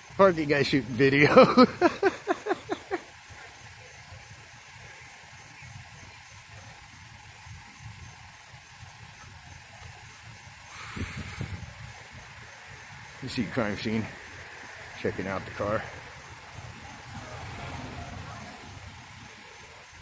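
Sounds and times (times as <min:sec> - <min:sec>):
faint hiss: 0:00.0 - 0:20.0.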